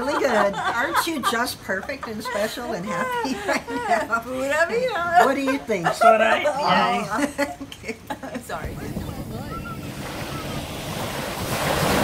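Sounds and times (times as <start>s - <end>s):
small waves washing on sand: 8.6s - 12.0s.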